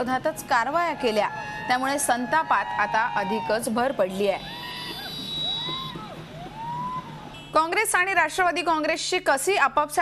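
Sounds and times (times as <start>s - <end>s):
siren-like wailing: 1.7s - 7.4s.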